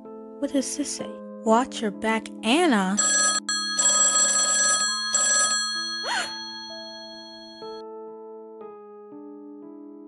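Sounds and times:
telephone bell ringing: 3.0s - 7.8s.

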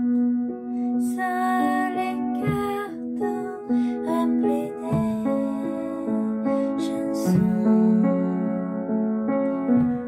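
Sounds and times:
upright piano melody: 0.0s - 10.0s.

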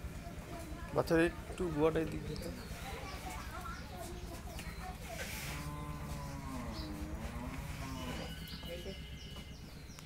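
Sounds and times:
cow mooing: 5.5s - 8.4s.

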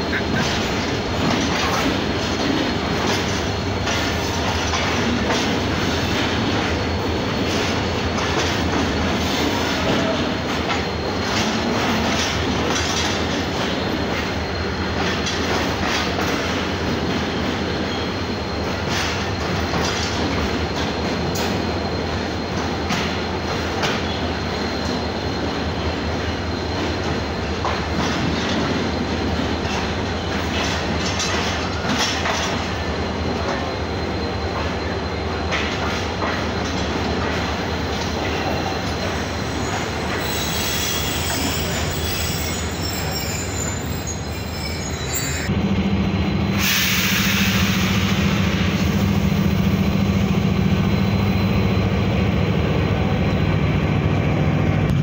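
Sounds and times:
train wheels rumbling on rails: 0.0s - 55.0s
high-pitched wheel squeal: 38.3s - 45.5s.

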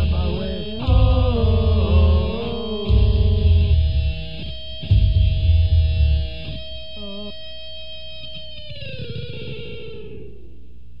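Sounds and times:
low hum: 0.0s - 7.4s
electric guitar note sliding down: 0.0s - 10.6s.

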